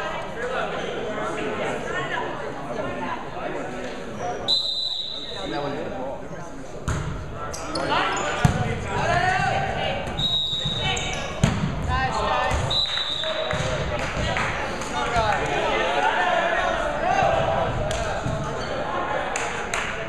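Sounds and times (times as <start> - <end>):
volleyball being hit: 11.4 - 12.7
players shouting in a hall: 14.9 - 20.0.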